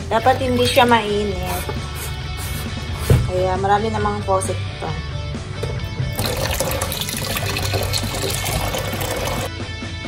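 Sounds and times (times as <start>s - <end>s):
tap water running into bucket: 6.1s - 9.5s.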